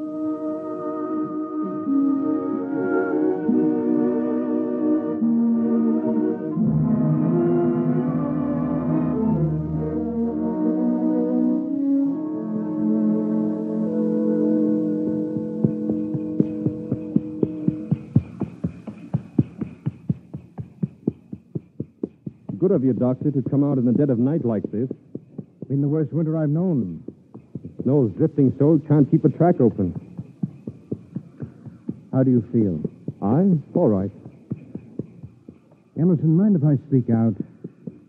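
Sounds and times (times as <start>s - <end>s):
music bridge: 0.0s - 38.0s
horse hoofbeats trotting: 15.6s - 38.0s.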